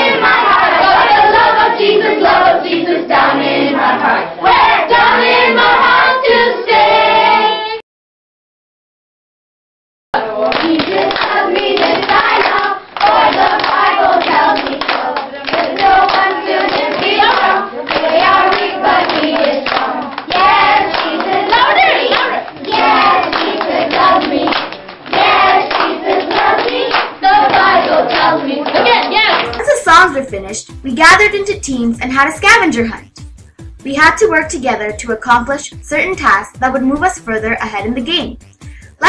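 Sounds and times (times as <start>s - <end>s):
children singing: 0.0s - 7.8s, 10.2s - 30.5s
children clapping: 10.2s - 30.8s.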